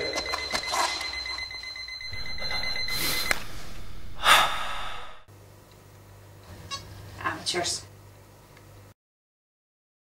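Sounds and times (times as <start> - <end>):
high-pitched electronic tone: 2.0 - 5.3
low rumble: 2.1 - 5.3.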